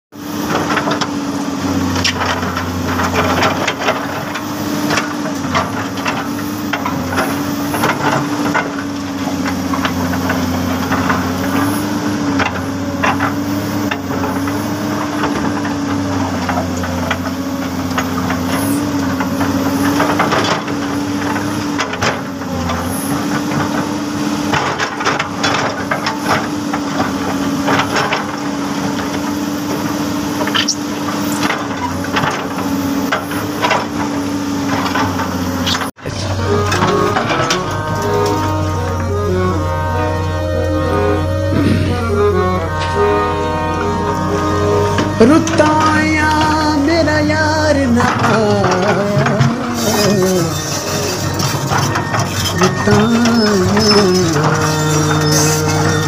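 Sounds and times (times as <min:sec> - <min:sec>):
excavator diesel engine running: 0:00.1 - 0:56.0
rattles and knocks: 0:00.5 - 0:56.0.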